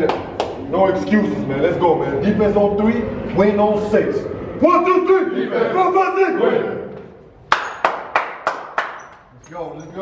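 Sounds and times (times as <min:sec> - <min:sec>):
group clapping in unison: 0:00.0 - 0:00.6, 0:07.5 - 0:09.2.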